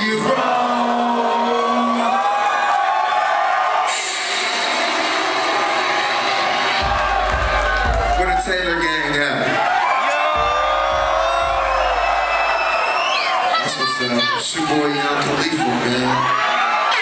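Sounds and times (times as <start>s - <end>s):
crowd cheering and whooping: 0.6s - 17.0s
hip-hop music over loudspeakers: 3.6s - 17.0s
deep bass: 6.7s - 9.2s, 10.3s - 13.0s.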